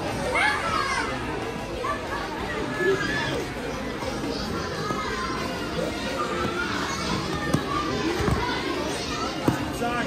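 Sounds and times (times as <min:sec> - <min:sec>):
children calling out: 0:00.0 - 0:09.5
spectators chatter: 0:00.0 - 0:10.0.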